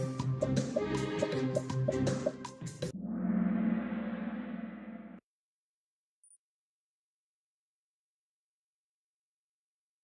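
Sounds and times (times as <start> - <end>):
quiz game countdown music: 0.0 - 2.8
gong-like time's-up sound: 2.8 - 5.2.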